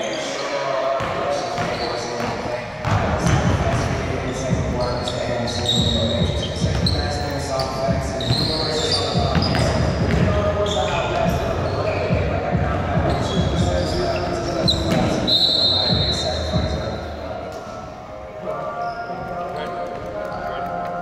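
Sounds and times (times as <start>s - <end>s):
sneakers squeaking: 0.0s - 21.0s.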